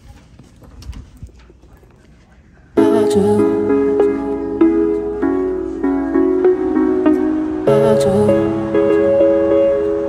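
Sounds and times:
soft footsteps: 0:00.0 - 0:02.8.

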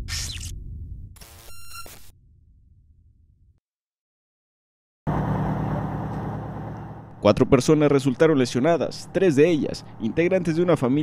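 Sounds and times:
vehicle engine idling: 0:05.1 - 0:07.3, 0:08.4 - 0:10.9.

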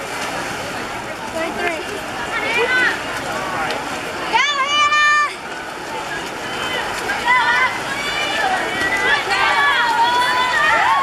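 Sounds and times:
crowd noise: 0:00.0 - 0:11.0
spectators shouting and cheering: 0:02.2 - 0:11.0.

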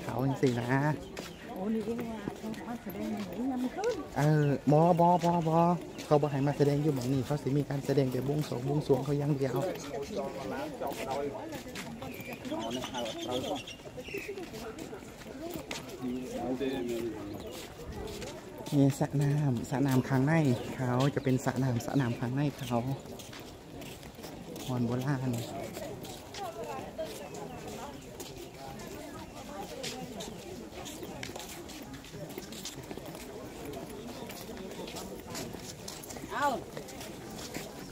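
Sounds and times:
footsteps on stone paving: 0:00.0 - 0:37.9
people talking: 0:00.0 - 0:37.9.

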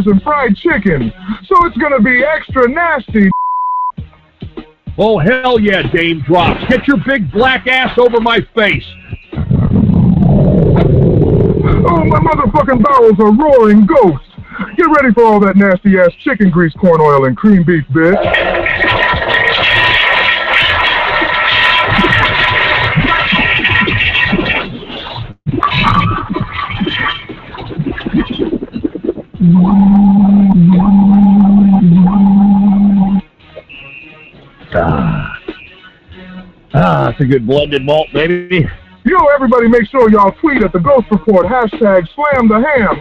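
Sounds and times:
low buzzing fart sound effect: 0:09.4 - 0:12.4, 0:18.2 - 0:24.7, 0:25.5 - 0:33.2
loud low rumbling sound effect: 0:09.4 - 0:12.6
jumbled noise: 0:18.1 - 0:35.9.

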